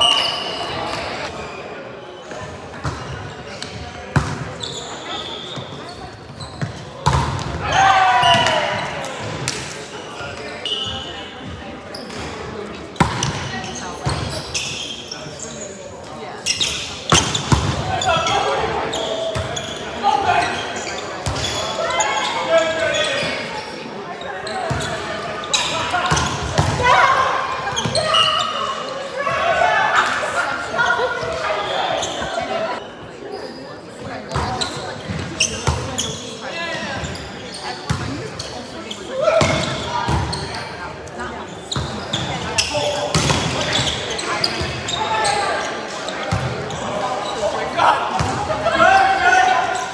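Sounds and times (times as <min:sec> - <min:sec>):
shoe squeaks: 0:00.0 - 0:02.4, 0:04.5 - 0:07.1, 0:10.5 - 0:11.3, 0:13.2 - 0:26.3, 0:27.7 - 0:28.9, 0:30.9 - 0:40.8, 0:41.4 - 0:47.5
players' voices: 0:00.0 - 0:49.9.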